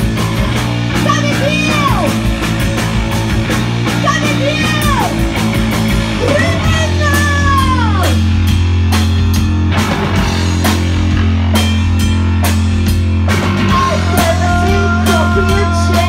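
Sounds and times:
drum kit beating: 0:00.0 - 0:16.0
electric bass: 0:00.0 - 0:16.0
woman singing: 0:13.7 - 0:16.0.

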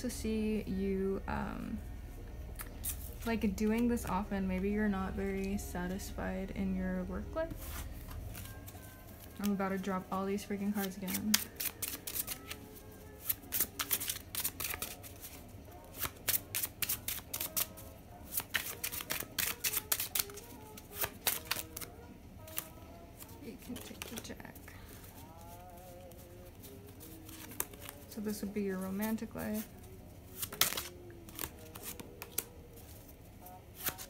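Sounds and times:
playing cards being shuffled: 0:07.5 - 0:24.5, 0:25.1 - 0:34.0.

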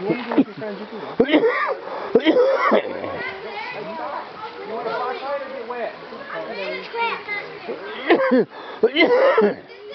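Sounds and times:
children talking and calling: 0:00.0 - 0:09.9.

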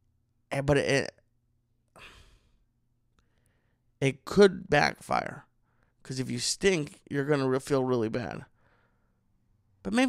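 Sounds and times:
man speaking: 0:00.5 - 0:01.3, 0:04.0 - 0:08.5
man breathing: 0:01.9 - 0:04.0, 0:05.6 - 0:06.0, 0:08.5 - 0:09.4.

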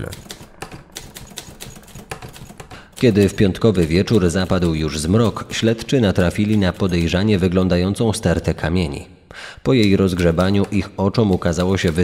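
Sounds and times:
typewriter keys clacking: 0:00.0 - 0:07.7, 0:09.7 - 0:12.0.

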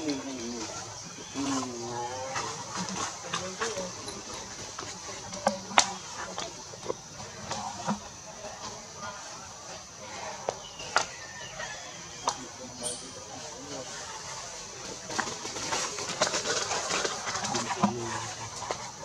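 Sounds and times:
faint voices murmuring: 0:00.0 - 0:19.0.

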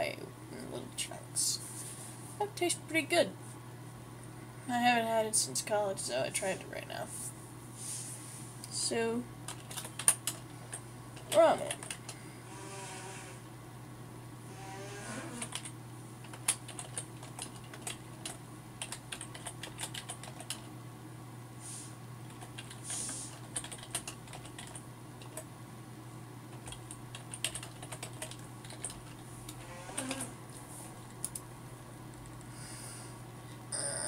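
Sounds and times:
steady low hum: 0:00.0 - 0:34.0
keyboard typing clicks: 0:09.5 - 0:10.4, 0:15.4 - 0:15.7, 0:16.3 - 0:20.6, 0:23.5 - 0:25.4.

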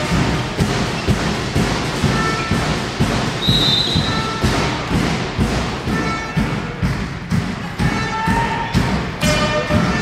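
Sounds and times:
ball bouncing on hall floor: 0:00.0 - 0:10.0.

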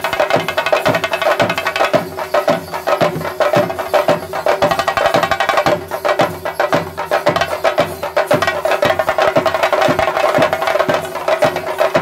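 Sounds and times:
fast drumming: 0:00.0 - 0:12.0.

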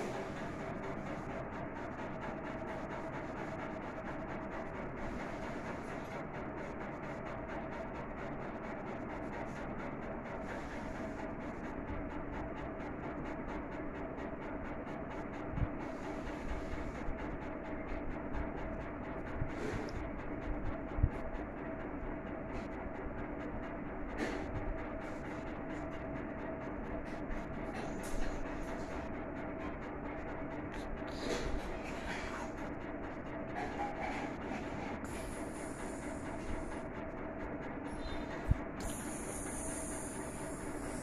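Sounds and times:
mechanical hum with faint tone: 0:00.0 - 0:41.0.

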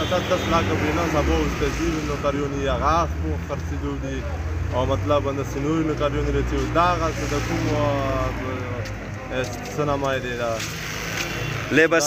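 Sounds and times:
man speaking: 0:00.0 - 0:10.8, 0:11.7 - 0:12.0
car engine hum: 0:00.0 - 0:12.0.

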